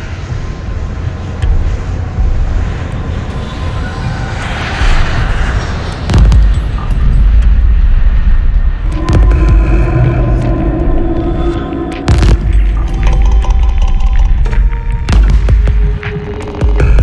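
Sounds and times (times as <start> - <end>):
jet airliner rumble: 0.0 - 17.0
loud boom: 8.8 - 14.4.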